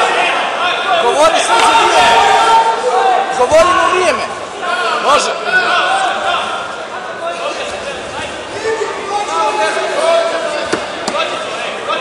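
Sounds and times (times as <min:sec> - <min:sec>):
men shouting coaching calls: 0:00.0 - 0:12.0.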